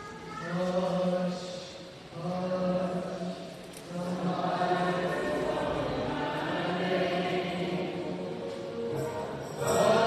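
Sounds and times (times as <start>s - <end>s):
voices singing a chant: 3.9s - 8.6s, 9.6s - 10.0s.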